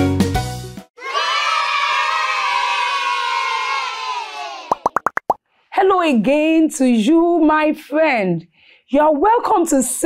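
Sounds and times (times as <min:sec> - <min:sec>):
kids cheering: 0:01.0 - 0:04.8
rising bloop sound effects: 0:04.7 - 0:05.4
woman speaking: 0:05.8 - 0:08.4.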